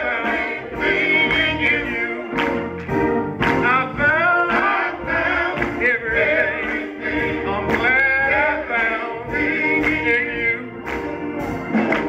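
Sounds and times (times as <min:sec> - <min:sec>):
male chorus singing: 0:00.0 - 0:02.8, 0:03.6 - 0:12.0
drum kit beat: 0:00.0 - 0:12.0
organ: 0:00.0 - 0:12.0.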